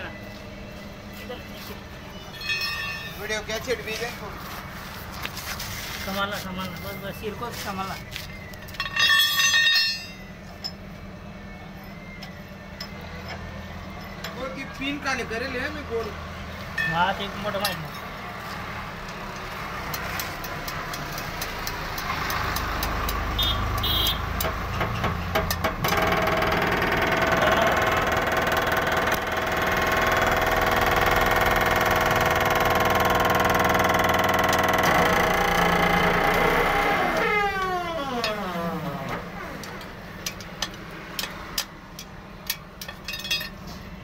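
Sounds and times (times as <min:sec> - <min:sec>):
vehicle engine running: 0:18.4 - 0:37.2.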